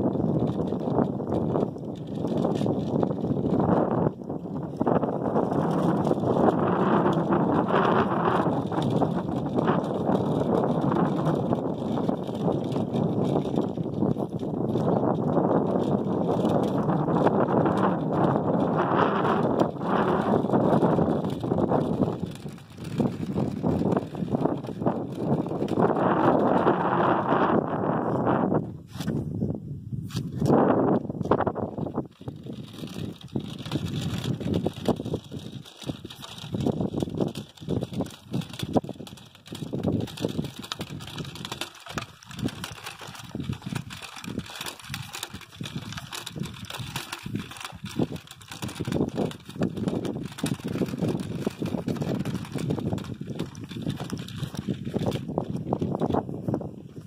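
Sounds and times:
measuring wheel rolling over gravel: 0:00.0 - 0:27.6, 0:30.4 - 0:57.0.

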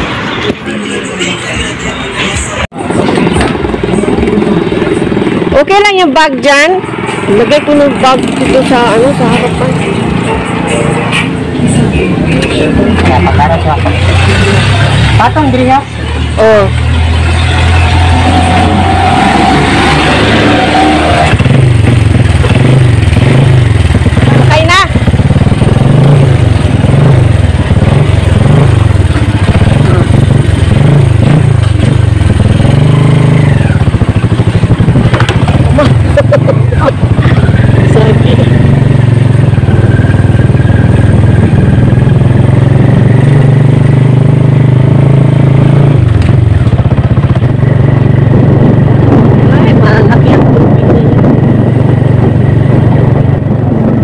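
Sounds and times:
small motorcycle engine revving: 0:06.5 - 0:10.7, 0:12.4 - 0:54.0.

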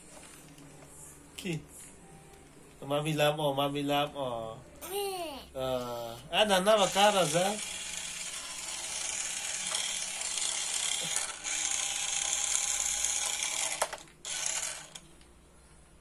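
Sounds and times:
toy car motor whirring: 0:06.6 - 0:15.0.

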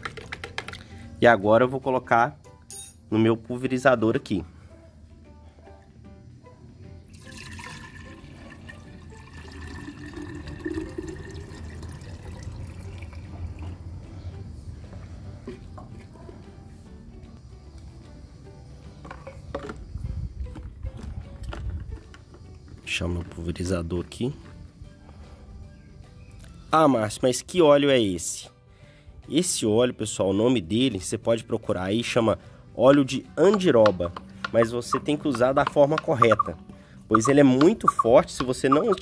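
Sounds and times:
liquid pouring into plastic bottle: 0:07.1 - 0:13.8.

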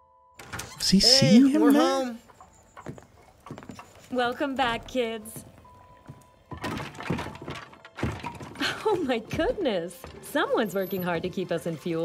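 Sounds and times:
person speaking: 0:00.8 - 0:02.3.

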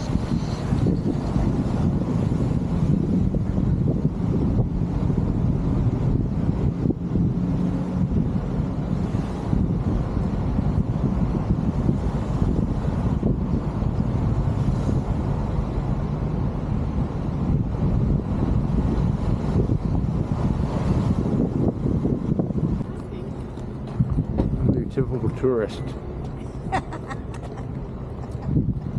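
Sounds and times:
car running and tyre noise: 0:00.0 - 0:26.8
wind buffeting microphone: 0:00.0 - 0:28.9.

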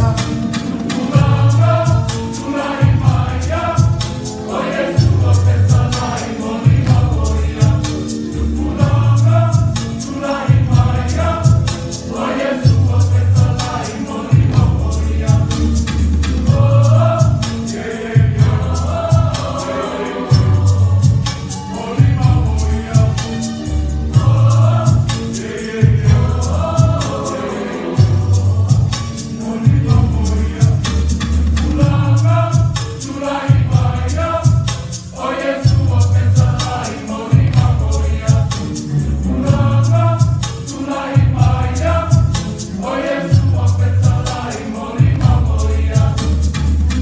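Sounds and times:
adults and children singing: 0:00.0 - 0:23.3, 0:24.2 - 0:31.0, 0:31.6 - 0:46.6
pulsing bass accompaniment: 0:01.1 - 0:02.2, 0:02.8 - 0:17.5, 0:18.2 - 0:19.6, 0:20.3 - 0:25.2, 0:25.8 - 0:27.2, 0:28.0 - 0:29.1, 0:29.7 - 0:32.8, 0:35.6 - 0:36.7, 0:37.3 - 0:40.4, 0:41.2 - 0:47.0.

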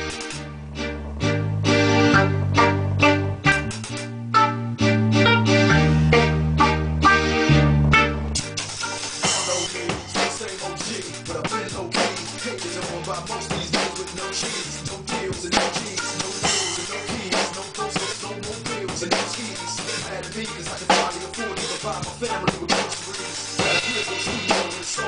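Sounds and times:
drum kit played with sticks: 0:00.0 - 0:25.0
hip-hop backing track: 0:00.0 - 0:25.0.

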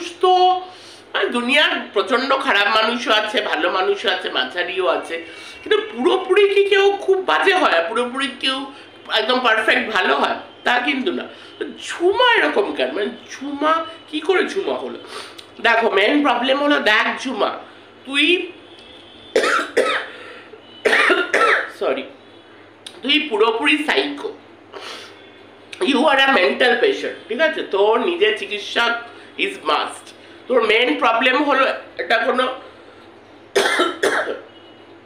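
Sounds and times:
woman coughing: 0:19.4 - 0:20.2, 0:20.8 - 0:21.8, 0:33.6 - 0:34.5
woman speaking: 0:25.8 - 0:32.6.

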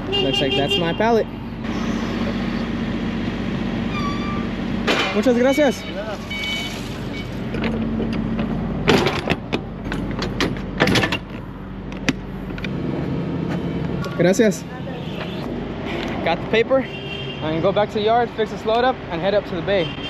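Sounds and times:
engine humming: 0:00.0 - 0:16.8
metal doors clanking shut: 0:08.8 - 0:11.3.

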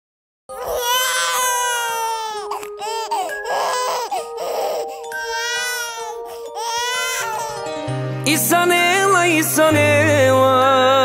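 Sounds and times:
newborn baby crying: 0:00.5 - 0:07.7.

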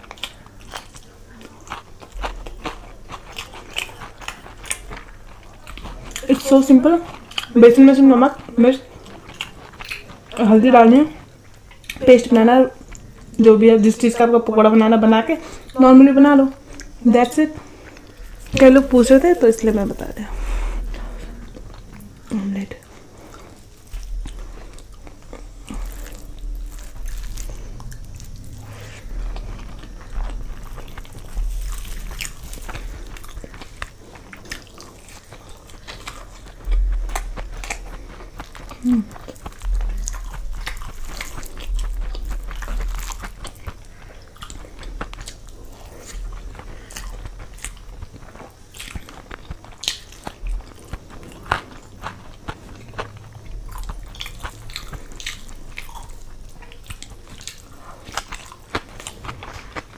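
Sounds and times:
person chewing food: 0:00.0 - 0:14.3, 0:15.3 - 0:59.9
dull low bumps: 0:17.6 - 0:34.3, 0:35.5 - 0:48.2, 0:50.4 - 0:57.3.

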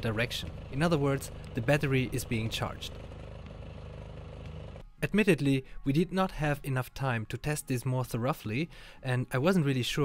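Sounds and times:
diesel generator humming: 0:00.0 - 0:04.8.

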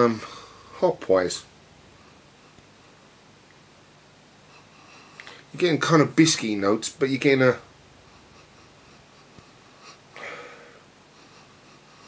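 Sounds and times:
man sniffing: 0:08.1 - 0:12.0.

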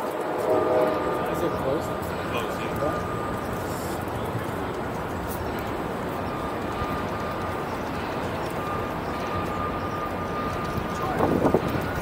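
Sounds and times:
city background rumble: 0:00.0 - 0:12.0.

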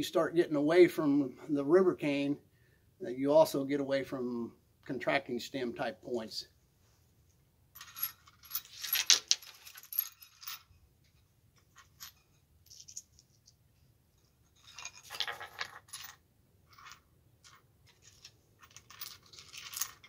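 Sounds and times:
small hard objects clinking: 0:16.7 - 0:20.0.

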